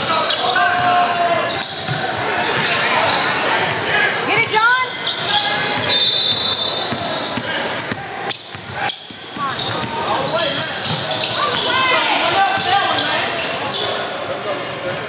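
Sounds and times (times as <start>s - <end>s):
players and spectators shouting: 0.0s - 14.8s.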